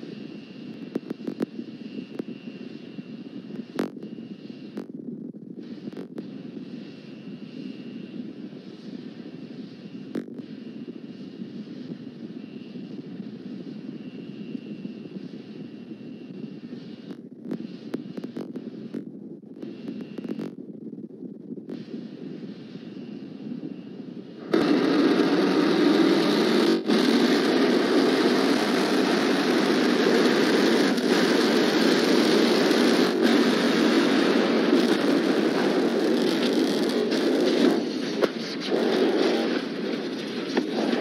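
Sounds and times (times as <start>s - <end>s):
rocket engine roar: 5.6s - 41.0s.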